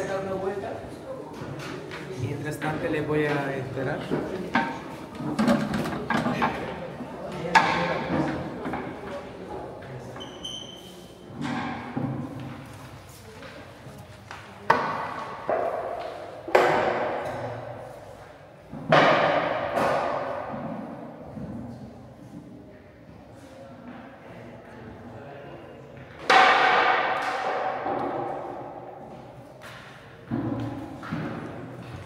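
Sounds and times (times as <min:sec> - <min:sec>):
crowd chatter: 0:00.0 - 0:18.6, 0:20.6 - 0:32.0.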